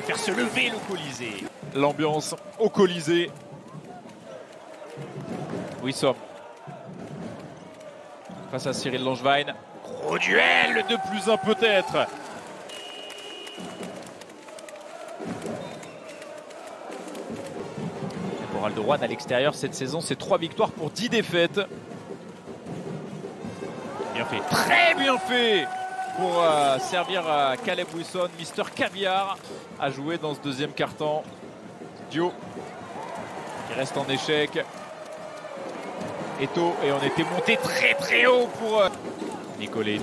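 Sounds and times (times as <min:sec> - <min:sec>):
crowd noise: 0:00.0 - 0:40.0.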